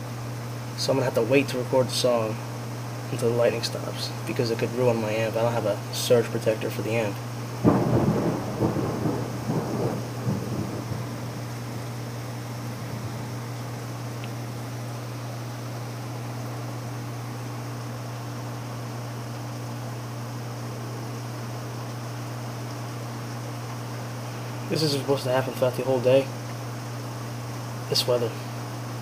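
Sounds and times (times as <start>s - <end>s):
heavy rain falling: 7.5s - 14.6s
thunderclap rumbling: 7.6s - 13.8s.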